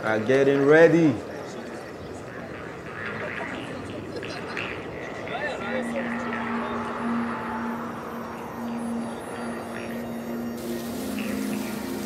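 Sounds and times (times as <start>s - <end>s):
fountain water splashing: 10.6s - 12.0s.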